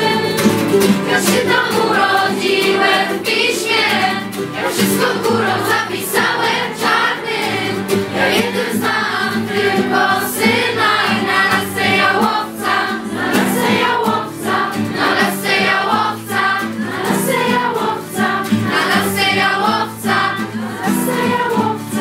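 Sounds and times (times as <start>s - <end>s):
children singing together: 0.0s - 22.0s.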